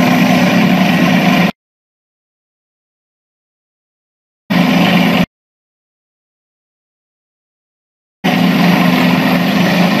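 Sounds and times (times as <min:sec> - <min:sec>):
tank engines humming: 0:00.0 - 0:01.5, 0:04.5 - 0:05.3, 0:08.2 - 0:10.0.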